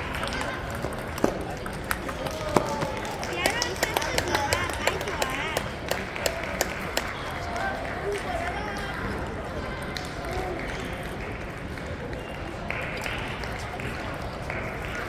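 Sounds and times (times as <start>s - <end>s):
people talking in background: 0.0s - 15.0s.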